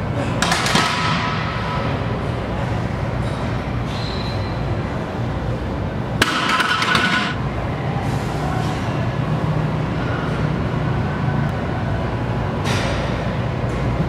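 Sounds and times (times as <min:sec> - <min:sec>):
steady low hum: 0:00.0 - 0:14.0.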